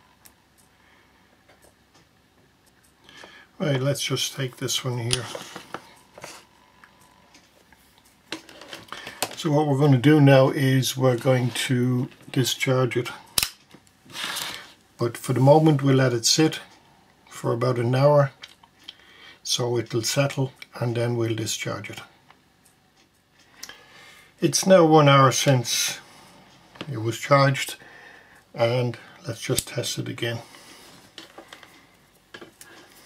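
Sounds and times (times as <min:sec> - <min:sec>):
batteries rustling on desk mat: 0:05.1 - 0:06.5, 0:07.8 - 0:09.4.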